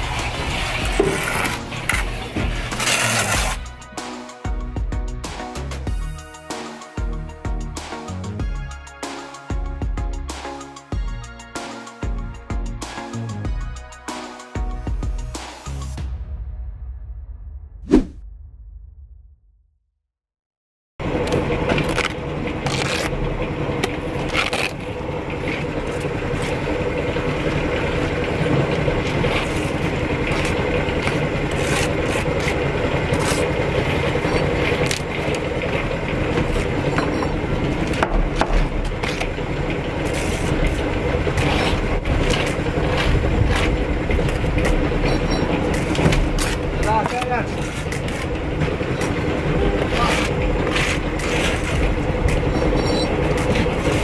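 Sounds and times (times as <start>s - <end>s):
trowel scraping mortar: 0.0s - 3.8s, 29.2s - 35.1s, 40.0s - 43.8s, 45.0s - 48.4s, 49.8s - 54.0s
mechanical drone: 21.0s - 54.0s.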